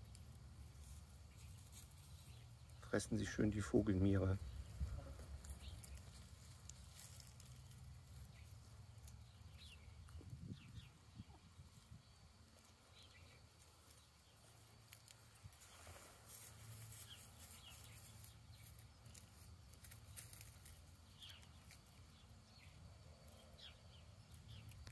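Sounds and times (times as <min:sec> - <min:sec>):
bird chirps and clicks: 0:05.4 - 0:11.4, 0:17.0 - 0:24.9.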